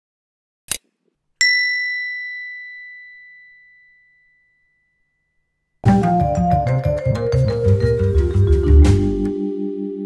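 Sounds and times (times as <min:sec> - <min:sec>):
bell-like ding: 0:01.4 - 0:05.5.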